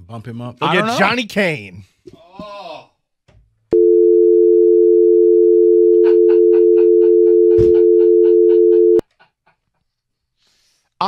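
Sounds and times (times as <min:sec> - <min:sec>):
telephone dial tone: 0:03.8 - 0:09.0.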